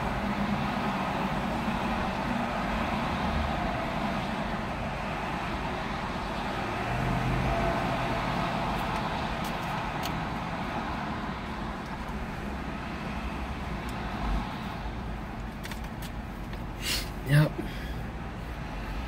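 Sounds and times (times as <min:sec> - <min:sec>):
traffic noise: 0:00.0 - 0:19.0
vehicle engine hum: 0:00.0 - 0:19.0.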